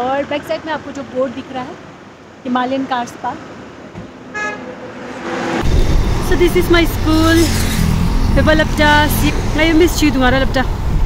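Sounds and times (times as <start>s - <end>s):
vehicle horn toot: 4.3s - 4.9s.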